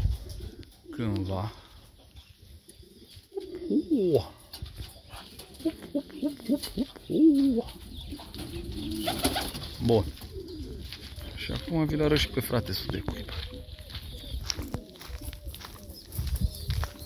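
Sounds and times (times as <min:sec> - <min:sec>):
pigeons cooing: 0:00.0 - 0:17.0.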